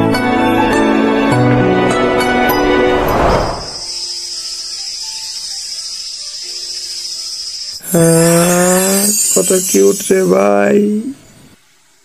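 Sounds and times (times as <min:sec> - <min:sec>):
vehicle whooshing past: 0:02.2 - 0:03.9
high insect drone: 0:03.4 - 0:12.0.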